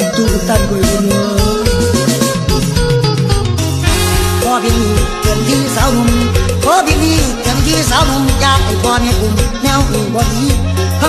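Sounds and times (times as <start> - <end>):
person singing: 0.0 - 3.0, 3.8 - 11.0
band playing a steady beat: 0.1 - 11.0.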